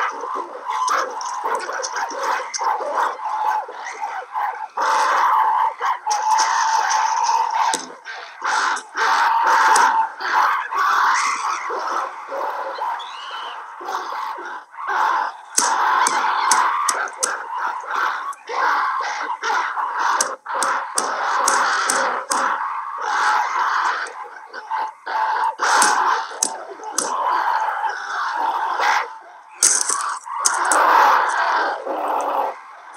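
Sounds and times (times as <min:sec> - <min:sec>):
ape-men screaming and hooting: 0:00.0 - 0:32.9
sharp clicks: 0:06.0 - 0:09.9, 0:15.5 - 0:18.5, 0:20.1 - 0:22.6, 0:25.6 - 0:27.3, 0:29.6 - 0:31.5.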